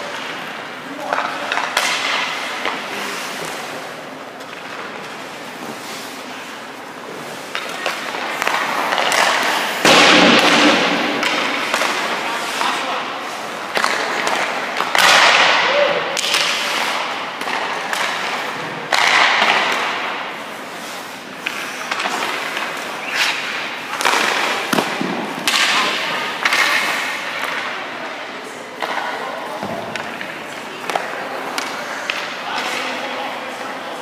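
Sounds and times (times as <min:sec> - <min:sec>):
hockey impacts echoing in arena: 0:00.0 - 0:34.0.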